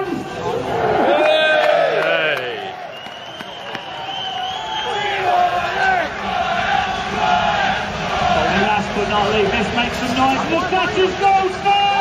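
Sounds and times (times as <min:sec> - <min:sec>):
crowd chanting: 0:00.3 - 0:09.8.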